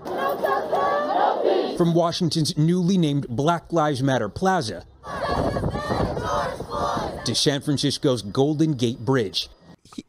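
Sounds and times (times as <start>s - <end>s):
crowd of protesters shouting: 0.0s - 1.8s, 5.0s - 7.5s.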